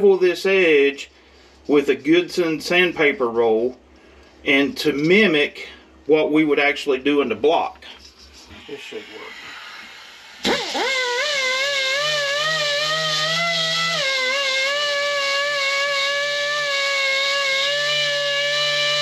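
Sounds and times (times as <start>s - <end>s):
die grinder high whine: 8.4s - 19.0s.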